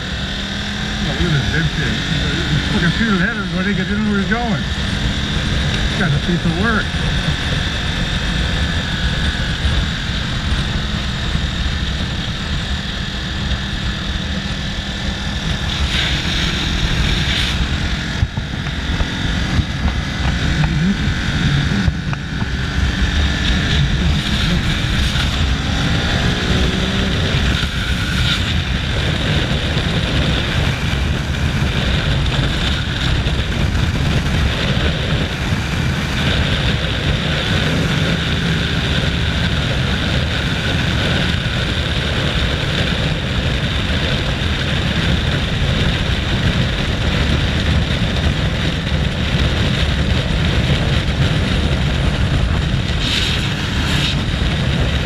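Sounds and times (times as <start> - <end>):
motorcycle engine running hard: 0.0 - 55.0
wind noise: 0.0 - 55.0.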